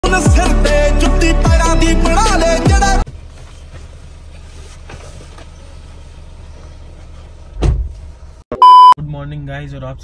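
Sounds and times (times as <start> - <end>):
car door slamming: 7.5 - 8.0.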